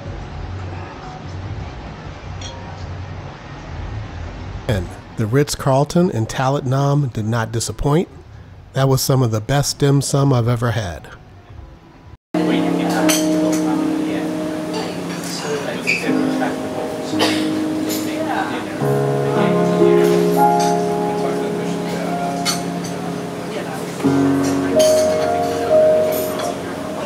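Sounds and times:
voices in the room: 0:00.4 - 0:27.0
clink of china and cutlery: 0:02.4 - 0:02.6, 0:13.0 - 0:13.7, 0:24.8 - 0:25.4
grand piano music: 0:12.4 - 0:27.0.

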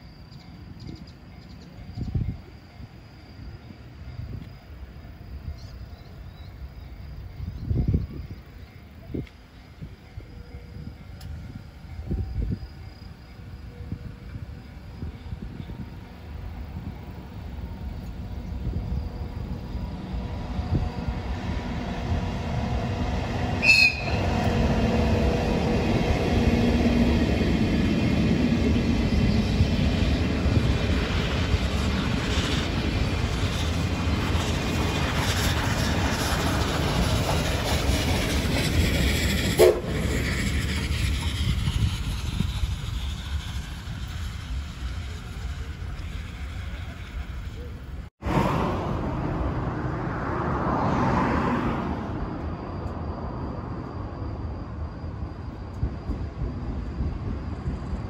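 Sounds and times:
train rumbling past: 0:00.0 - 0:58.0
low train whistle blast: 0:23.5 - 0:25.7, 0:39.4 - 0:40.2
high-pitched train horn toot: 0:23.5 - 0:26.1.

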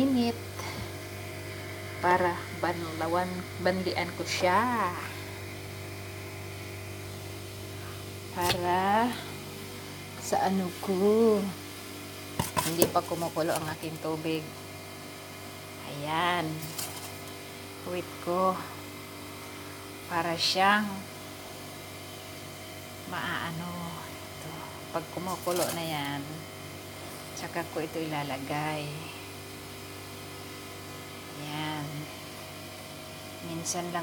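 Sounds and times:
appliance mechanical hum: 0:00.0 - 0:34.0.

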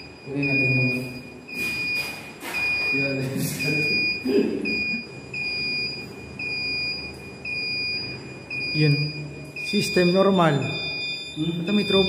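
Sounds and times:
alarm panel beeping: 0:00.0 - 0:12.0.

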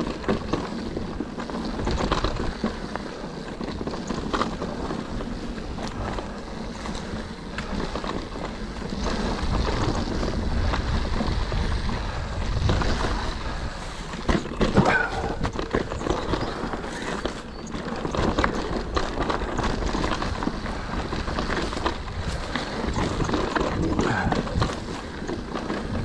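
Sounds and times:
bike rattling and knocking: 0:00.0 - 0:26.0
tyres rumbling on loose dirt: 0:00.0 - 0:26.0.

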